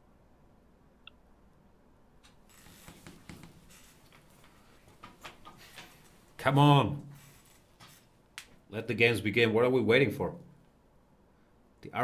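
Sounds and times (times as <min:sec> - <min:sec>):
light hiss: 0:02.2 - 0:08.6.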